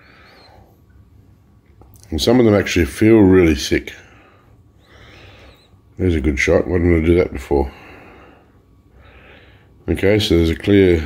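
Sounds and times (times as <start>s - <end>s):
faint breath: 0.0s - 0.8s, 4.0s - 5.8s, 7.7s - 9.8s.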